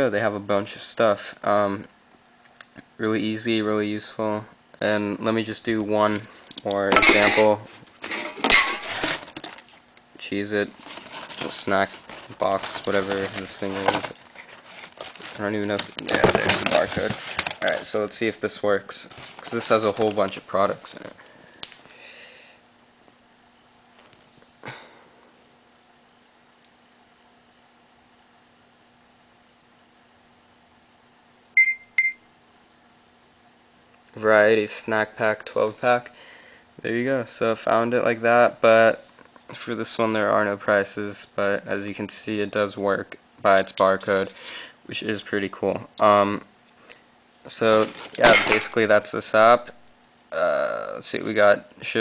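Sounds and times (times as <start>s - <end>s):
cardboard packaging rustling: 7.2s - 9.9s, 10.5s - 21.2s, 47.6s - 48.8s
high electronic beeps: 31.6s - 32.2s.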